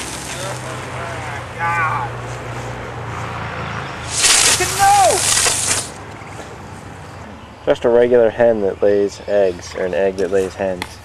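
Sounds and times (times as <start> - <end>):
person exclaiming: 1.1 - 2.2, 4.4 - 5.4
firework spraying hiss: 4.0 - 6.0.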